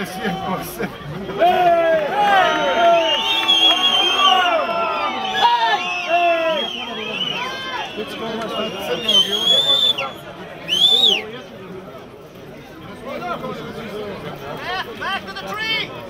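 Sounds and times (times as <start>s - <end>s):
referee's whistle trilling blasts: 2.9s - 11.2s.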